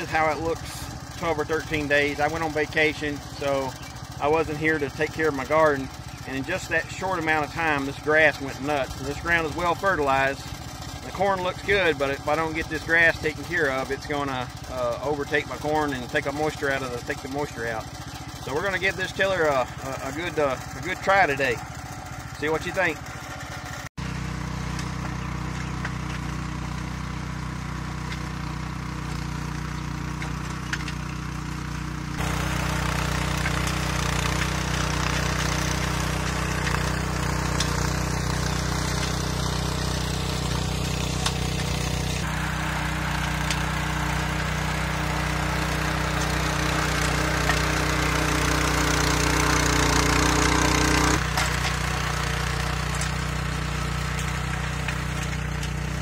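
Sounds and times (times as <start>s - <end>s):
tiller engine running under load: 0.0s - 56.0s
tines digging through soil: 0.0s - 56.0s.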